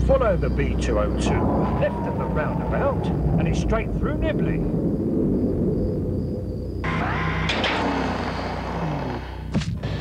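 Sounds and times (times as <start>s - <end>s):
low steady rumble: 0.0s - 9.5s.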